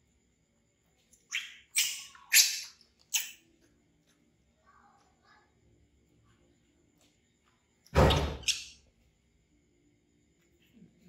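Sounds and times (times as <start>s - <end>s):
baby monkey shrieking: 1.3s - 3.4s, 8.0s - 8.8s.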